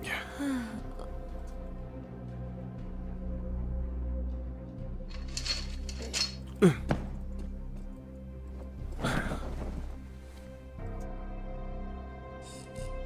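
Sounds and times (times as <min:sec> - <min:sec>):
background music: 0:00.0 - 0:13.0
metal cot frame clanking: 0:05.1 - 0:07.2
fabric sheet rustling: 0:08.4 - 0:10.7.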